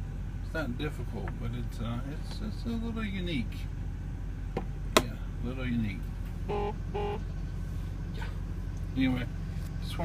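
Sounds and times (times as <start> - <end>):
car engine rumble inside cabin: 0.0 - 10.0.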